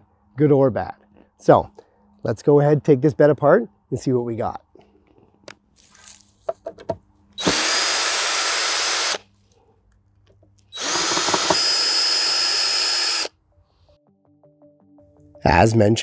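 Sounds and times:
cordless drill driving screws: 0:07.4 - 0:09.2, 0:10.7 - 0:13.3.

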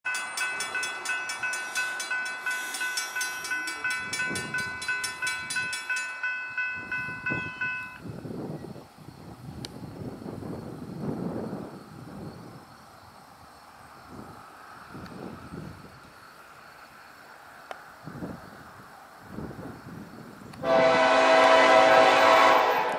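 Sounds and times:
crossing warning bell ringing: 0:00.1 - 0:08.1, 0:20.6 - 0:22.9.

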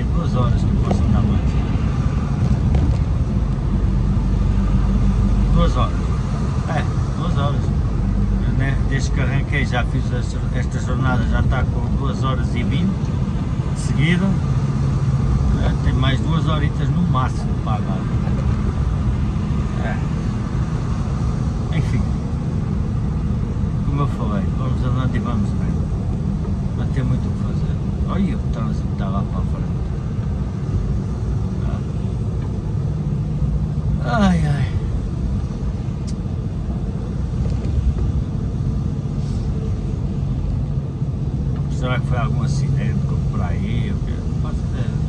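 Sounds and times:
truck engine rumble: 0:00.0 - 0:45.0
tyres on wet road: 0:00.0 - 0:45.0.

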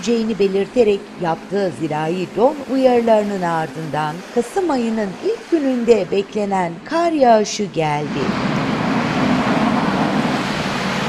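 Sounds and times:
rushing road traffic noise: 0:00.0 - 0:11.0.

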